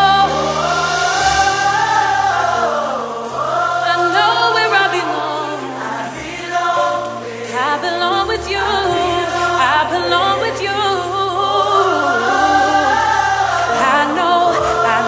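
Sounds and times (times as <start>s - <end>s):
choir singing gospel song: 0.0s - 15.0s.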